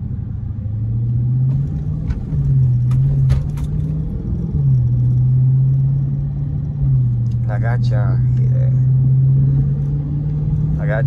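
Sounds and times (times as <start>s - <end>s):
car engine from inside cabin: 0.0s - 11.0s.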